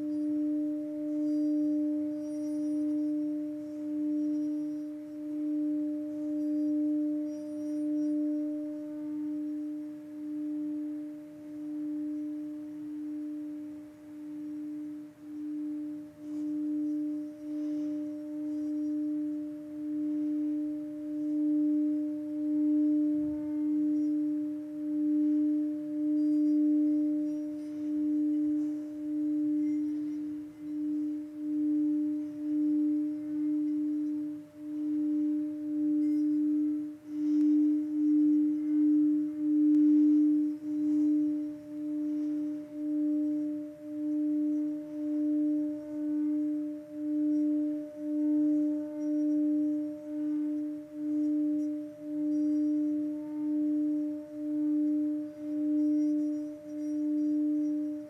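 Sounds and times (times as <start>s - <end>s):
singing bowl low tone: 0.0s - 58.0s.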